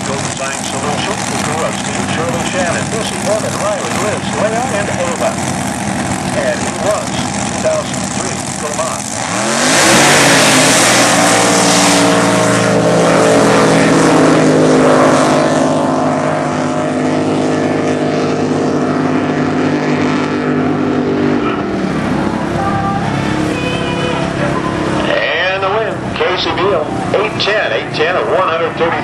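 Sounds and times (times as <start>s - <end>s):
boat engines at full throttle: 0.0s - 29.0s.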